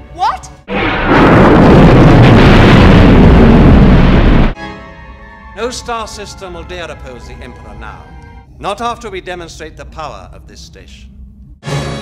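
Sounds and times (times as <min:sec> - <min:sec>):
loud sustained explosion: 0:00.7 - 0:04.6.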